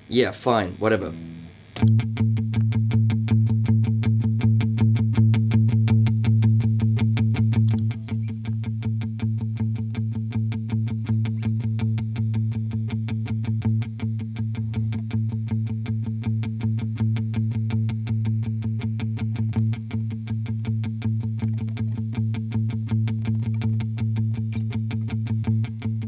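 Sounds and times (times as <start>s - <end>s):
distorted electric guitar picking: 1.0s - 26.0s.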